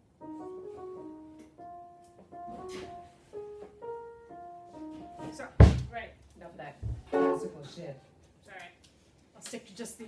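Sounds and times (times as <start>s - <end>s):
electric keyboard piano melody: 0.0s - 5.7s, 7.1s - 7.7s.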